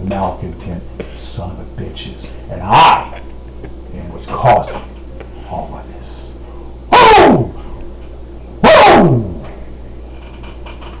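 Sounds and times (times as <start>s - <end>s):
loud distorted vocal cries: 6.9s - 7.5s.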